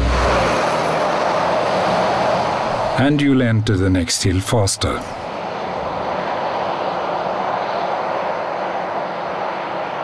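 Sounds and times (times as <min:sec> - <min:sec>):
truck tyre and road noise: 0:00.0 - 0:10.0.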